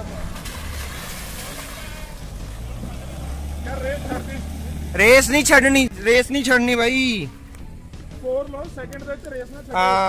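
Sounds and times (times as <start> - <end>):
tyres spinning in sand: 0.0 - 5.4
engine running under load: 0.0 - 6.2.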